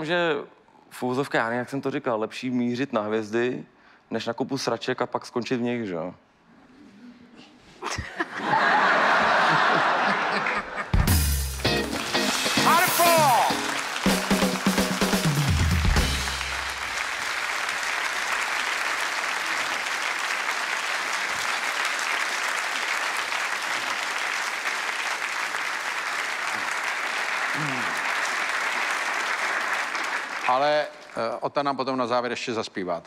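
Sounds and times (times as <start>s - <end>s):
audience applauding: 8.5s - 31.3s.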